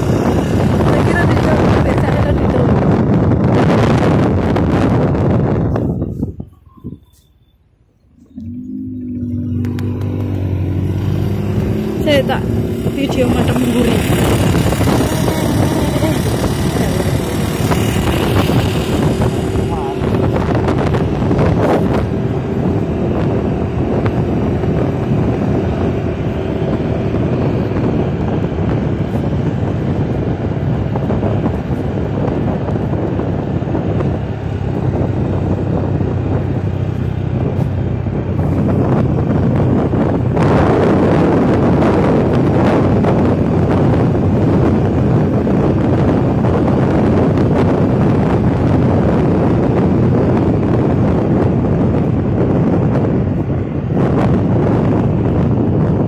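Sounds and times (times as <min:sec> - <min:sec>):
motorcycle engine cruising: 0:00.0 - 0:07.2, 0:08.0 - 0:56.0
wind rushing over microphone: 0:00.0 - 0:56.0.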